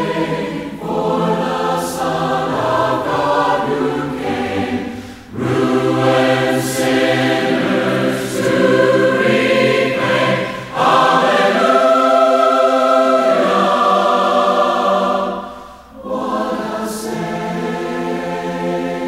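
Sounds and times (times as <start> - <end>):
choir singing a hymn: 0.0 - 19.0
singers breathing: 4.8 - 5.4, 10.3 - 10.8, 15.4 - 16.0.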